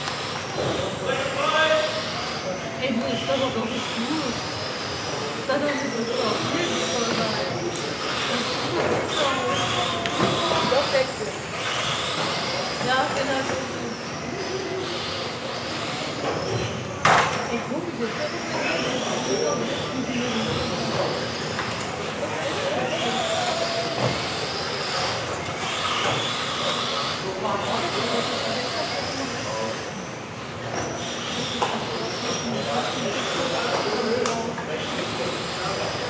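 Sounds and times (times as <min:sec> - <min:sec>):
rc car motors whining: 0:00.0 - 0:36.0.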